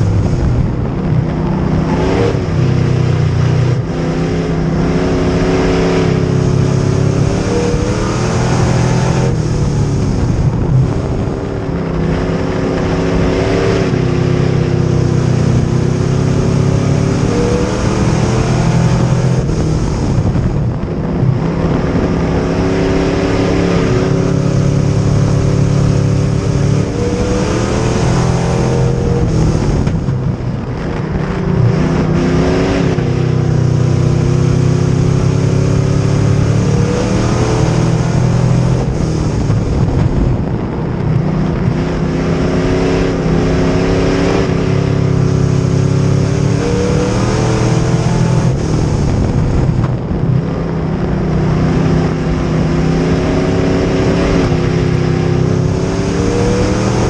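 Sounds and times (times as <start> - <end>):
race car engine revving: 0.0 - 57.0.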